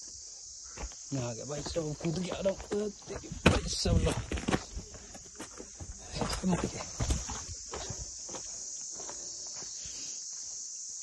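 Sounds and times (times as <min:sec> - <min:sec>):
high-pitched hiss: 0:00.0 - 0:03.9, 0:04.8 - 0:11.0.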